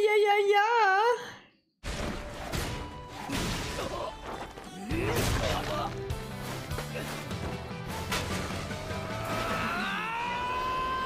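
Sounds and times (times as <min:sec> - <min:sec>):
soundtrack music: 0:02.4 - 0:11.0.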